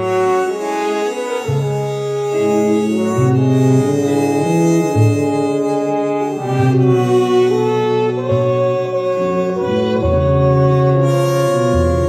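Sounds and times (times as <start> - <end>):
jazz band sustained chords: 0.0 - 12.0
low held note: 0.0 - 12.0.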